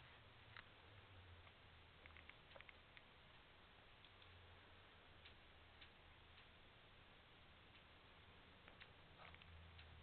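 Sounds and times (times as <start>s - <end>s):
small light ticks: 1.4s - 4.4s, 5.2s - 6.6s, 7.7s - 7.9s, 8.6s - 10.0s.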